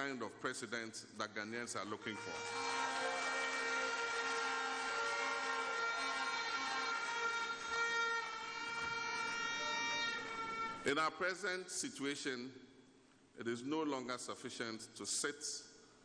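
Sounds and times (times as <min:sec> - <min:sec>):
horns blowing long notes: 0:02.0 - 0:10.9
audience clapping: 0:02.1 - 0:10.8.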